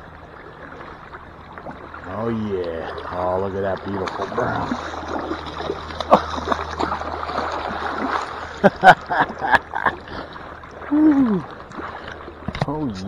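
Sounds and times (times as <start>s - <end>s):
running river water: 0.0s - 13.0s
fish splashing in net: 3.8s - 8.6s.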